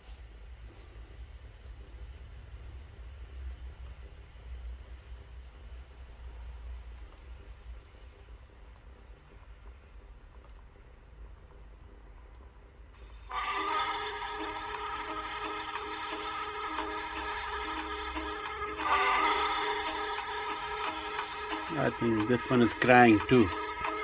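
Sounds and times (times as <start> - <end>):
low speaker hum: 0.0 - 24.0
tape hiss: 0.0 - 24.0.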